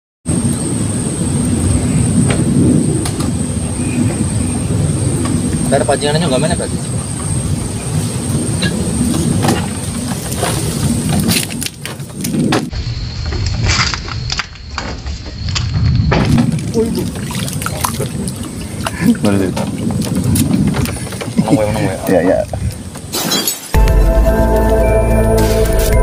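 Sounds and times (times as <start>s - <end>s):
low outdoor rumble: 0.3s - 22.9s.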